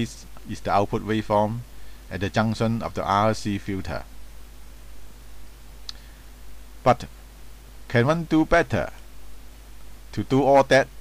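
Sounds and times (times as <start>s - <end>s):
steady low hum: 0.0s - 11.0s
faint short click: 5.8s - 6.1s.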